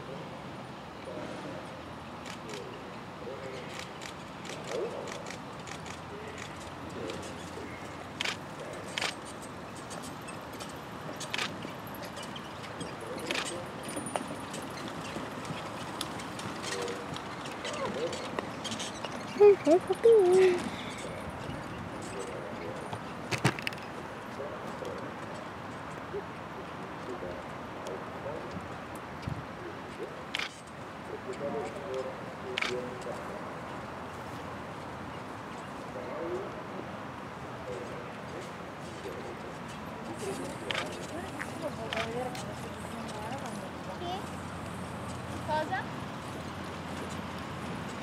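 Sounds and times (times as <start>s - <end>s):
distant voices talking: 0.0s - 48.0s
horse hoofbeats trotting: 3.7s - 23.4s.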